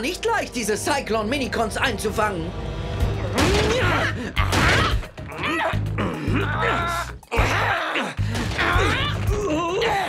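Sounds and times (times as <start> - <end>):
cartoon background music: 0.0 - 10.0
wordless grunts: 3.5 - 10.0.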